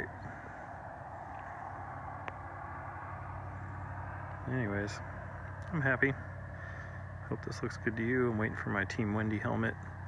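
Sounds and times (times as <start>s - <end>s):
vehicle humming: 0.0s - 10.0s.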